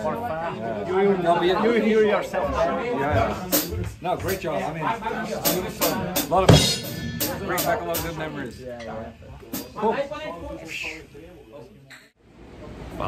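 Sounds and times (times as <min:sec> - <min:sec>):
drum kit being struck: 0:03.2 - 0:04.4, 0:05.4 - 0:08.3, 0:09.5 - 0:09.8.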